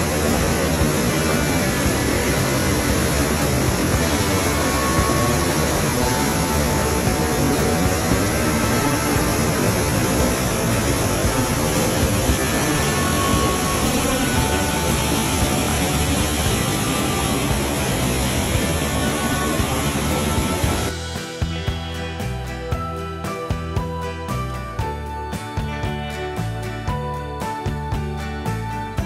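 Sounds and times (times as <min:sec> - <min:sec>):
waterfall rushing into pool: 0:00.0 - 0:21.4.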